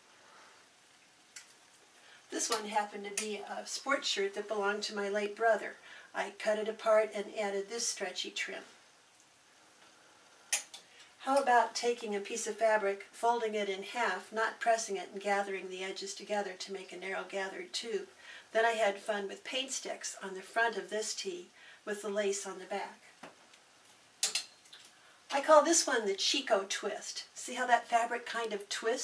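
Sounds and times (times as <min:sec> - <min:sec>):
hangers clicking on metal rail: 0:24.2 - 0:24.7.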